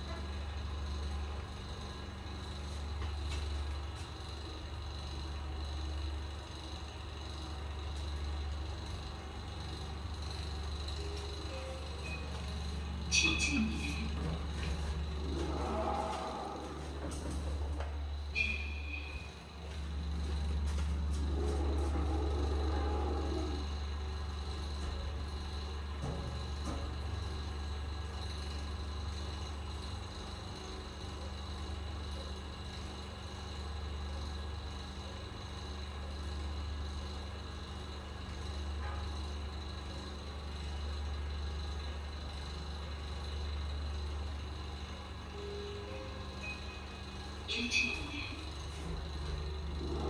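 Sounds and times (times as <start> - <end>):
elevator hum: 0.0 - 50.0.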